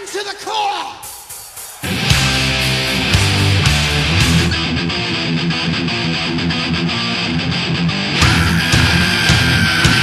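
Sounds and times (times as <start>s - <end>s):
metal band playing: 0.0s - 10.0s
distorted electric guitar riff: 1.8s - 10.0s.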